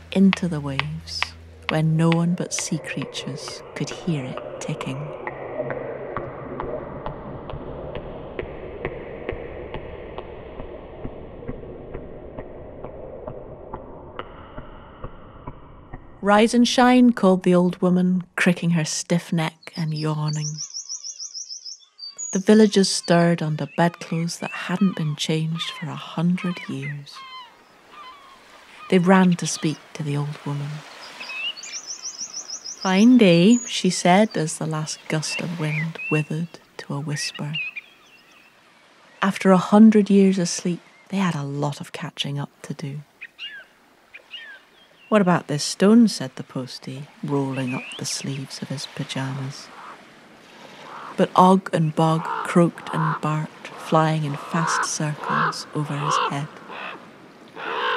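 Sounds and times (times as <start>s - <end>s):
person speaking: 0.0s - 5.2s, 22.4s - 27.2s, 51.2s - 56.6s
songbird singing: 0.0s - 5.6s, 16.2s - 57.9s
low murky drone: 0.0s - 16.3s.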